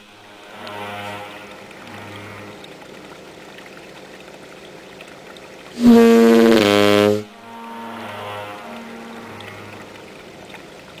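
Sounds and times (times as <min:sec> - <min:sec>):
ship's horn blast: 0:00.2 - 0:02.7, 0:05.8 - 0:10.2.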